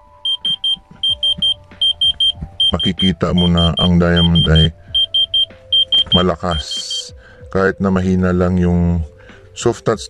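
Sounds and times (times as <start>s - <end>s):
diamond tester beeping: 0.2s - 6.7s.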